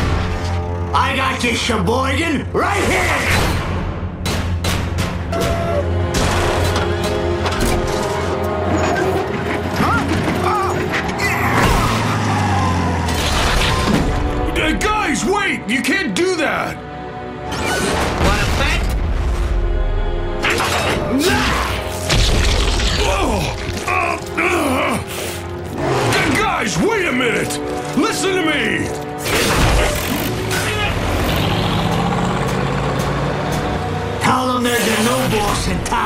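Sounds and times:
cartoon action music: 0:02.4 - 0:15.7, 0:20.3 - 0:32.1
man groaning and grunting: 0:23.0 - 0:25.1.

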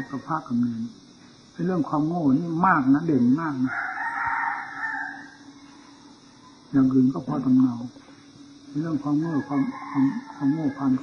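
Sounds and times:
rooster crowing: 0:03.6 - 0:06.7, 0:09.1 - 0:11.0.

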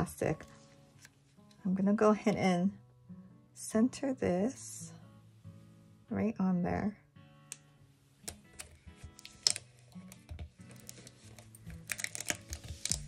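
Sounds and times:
soft background music: 0:00.0 - 0:13.0
plastic sheet clicking and rustling: 0:08.3 - 0:13.0.

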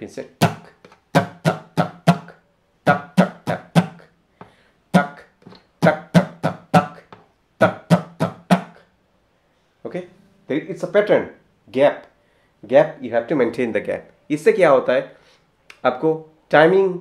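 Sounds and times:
acoustic guitar strumming: 0:00.4 - 0:02.3, 0:02.9 - 0:04.0, 0:05.8 - 0:07.0, 0:07.6 - 0:08.8, 0:10.1 - 0:11.6.

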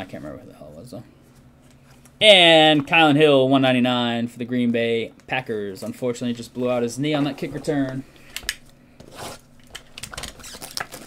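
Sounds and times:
plastic wrap crackling: 0:09.6 - 0:11.0.

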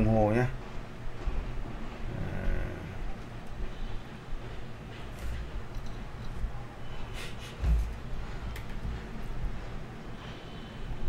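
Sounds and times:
room noise: 0:00.0 - 0:11.0
dull thump: 0:07.6 - 0:08.0.

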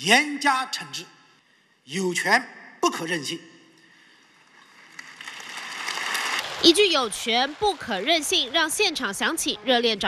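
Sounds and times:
audience applause: 0:04.2 - 0:09.7.

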